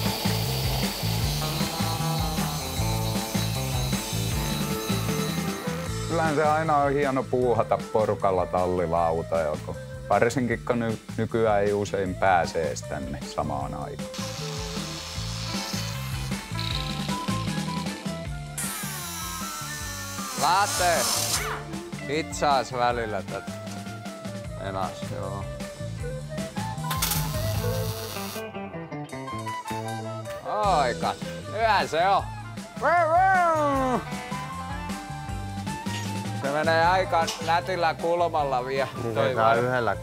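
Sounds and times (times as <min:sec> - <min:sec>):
background music with bass line: 0:00.0 - 0:40.0.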